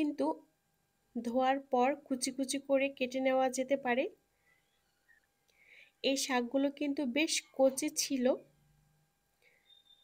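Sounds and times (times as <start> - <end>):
woman's voice: 0.0 - 0.5, 1.2 - 4.2, 6.0 - 8.5.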